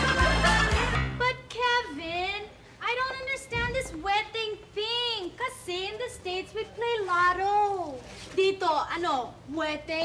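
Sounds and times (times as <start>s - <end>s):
woman's high-pitched voice: 1.2s - 10.0s.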